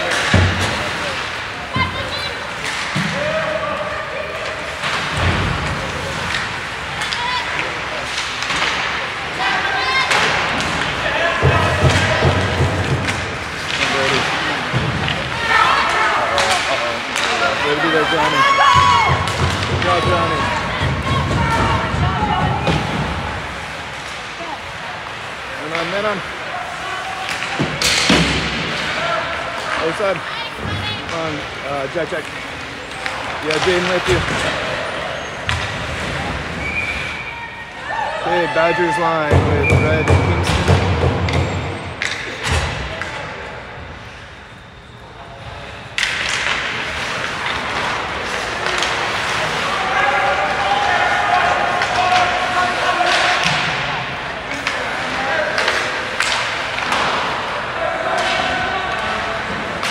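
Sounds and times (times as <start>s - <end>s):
puck and sticks knocking boards: 0.0s - 3.4s, 10.1s - 24.3s, 27.2s - 29.0s, 39.2s - 43.1s, 51.0s - 57.5s.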